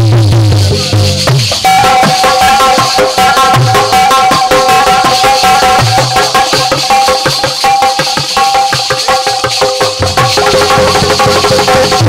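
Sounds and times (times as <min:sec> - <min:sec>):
drum and rattling percussion: 0:00.0 - 0:12.0
harmonium melody: 0:00.5 - 0:12.0.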